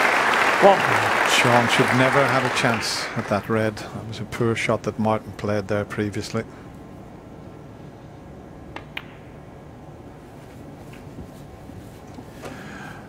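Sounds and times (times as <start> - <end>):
quiet arena hush: 0.0 - 13.0
snooker balls clicking: 8.7 - 9.4.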